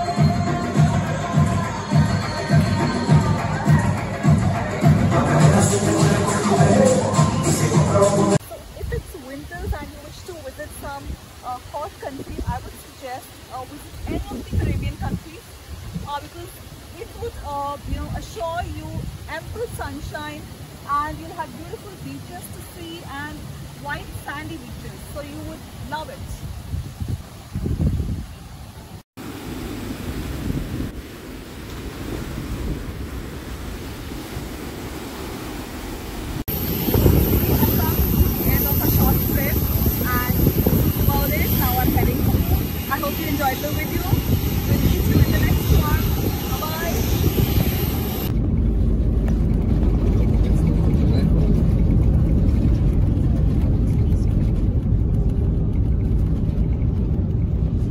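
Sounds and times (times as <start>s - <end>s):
outdoor airport noise: 0.0s - 57.9s
small waves washing up beach: 8.4s - 27.5s, 29.2s - 48.3s
wind buffeting microphone: 8.4s - 29.0s, 29.7s - 57.9s
jet airliner rumble inside cabin: 11.8s - 15.3s, 36.1s - 57.9s.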